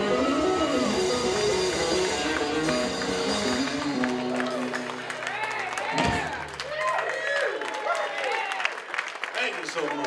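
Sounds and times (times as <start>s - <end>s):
electric guitar: 0.0s - 6.8s
live band playing: 0.0s - 6.9s.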